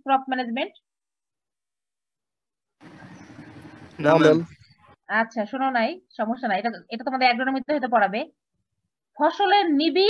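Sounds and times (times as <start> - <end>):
rushing microphone background noise: 2.8 - 4.7.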